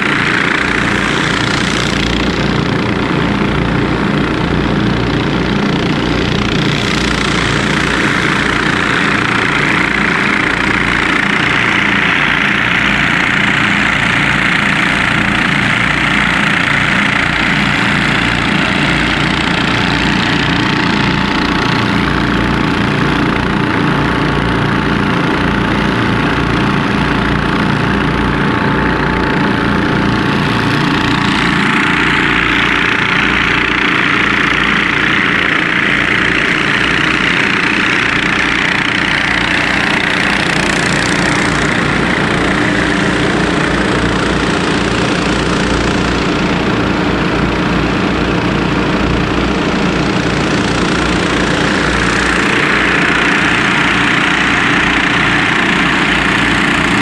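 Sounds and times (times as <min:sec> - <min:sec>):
engine-driven water pumps running: 0:00.0 - 0:57.0.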